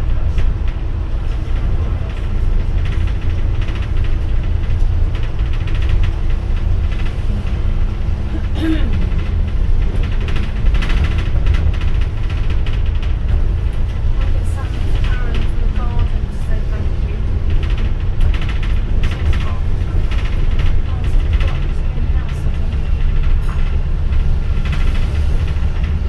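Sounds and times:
bus engine and road rumble: 0.0s - 26.0s.

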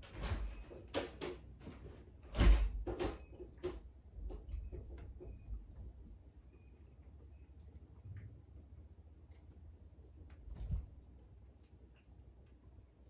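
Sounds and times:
door opening and shutting: 0.0s - 5.6s.

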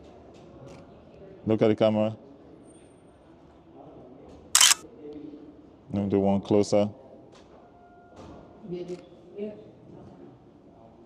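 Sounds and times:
camera shutter click: 4.6s - 4.8s.

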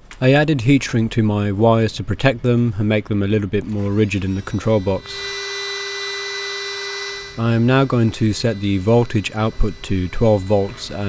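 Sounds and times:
heat gun fan humming: 3.8s - 11.0s.

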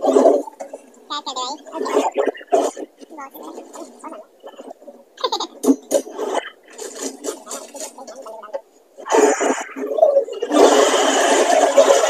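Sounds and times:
man making wordless vocal noises: 3.1s - 4.3s.

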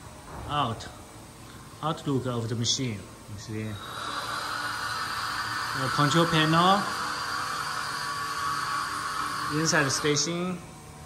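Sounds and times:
factory machinery hiss and hum: 0.0s - 11.0s.

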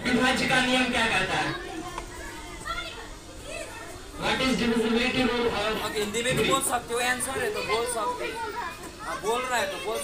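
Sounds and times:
children's voices: 1.2s - 4.4s, 6.0s - 10.0s.

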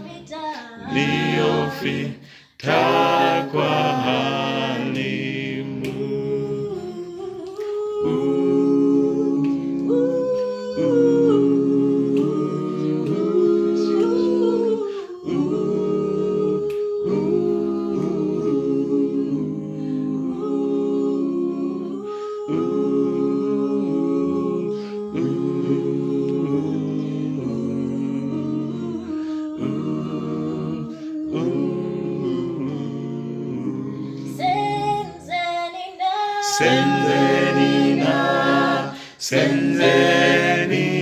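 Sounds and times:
voices singing in close harmony: 0.7s - 41.0s.

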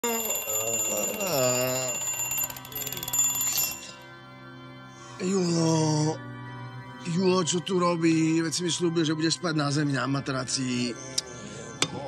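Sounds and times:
alarm clock bells ringing: 0.0s - 4.3s.

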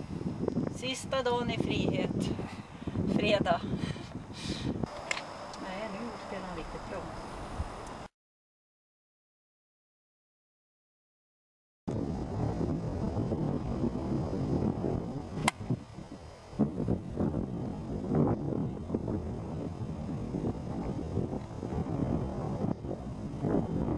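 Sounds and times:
low outdoor rumble: 11.9s - 23.9s
golf club striking ball: 15.4s - 15.8s.

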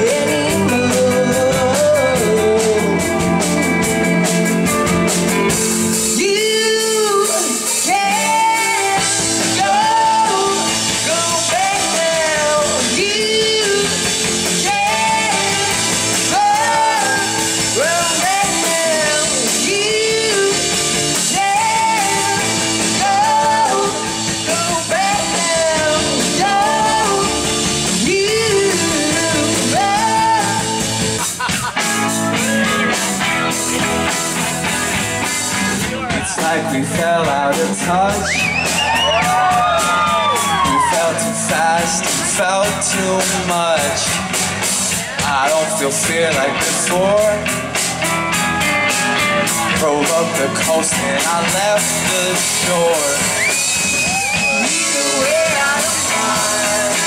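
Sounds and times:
bass guitar: 0.0s - 57.0s
bending lead guitar melody: 0.0s - 57.0s
drums: 0.0s - 57.0s
electric guitars: 0.0s - 57.0s.

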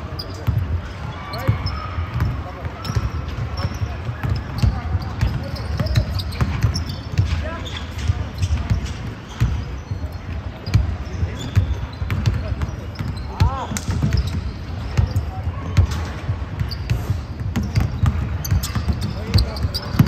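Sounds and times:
basketballs bouncing on wooden floor: 0.0s - 20.0s
sneakers squeaking on court: 0.0s - 20.0s.

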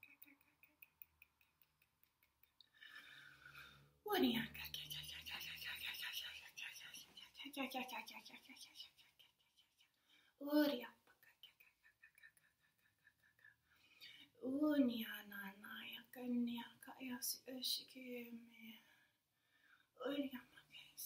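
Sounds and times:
woman whispering: 4.1s - 12.5s, 14.0s - 19.0s, 20.0s - 21.0s.

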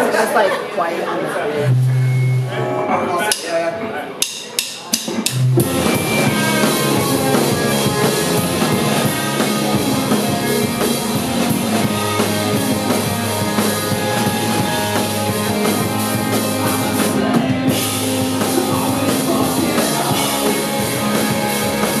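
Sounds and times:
punk rock band playing: 1.6s - 3.4s, 4.2s - 22.0s.

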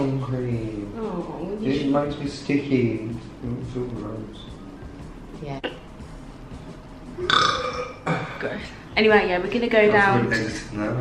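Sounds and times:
person burping: 7.2s - 8.4s.

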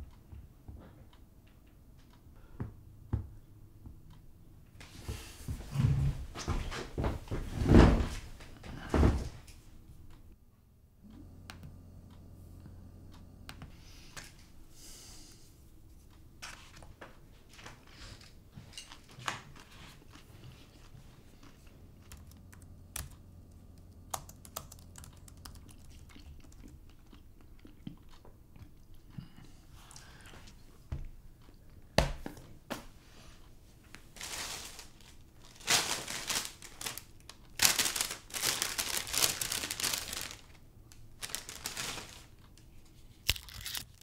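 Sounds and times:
typing on laptop keyboard: 22.0s - 26.8s
rustling: 33.7s - 44.0s.

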